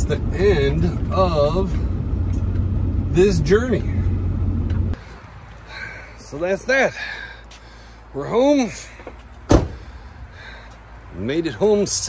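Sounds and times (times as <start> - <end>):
truck engine idling: 0.0 - 5.0.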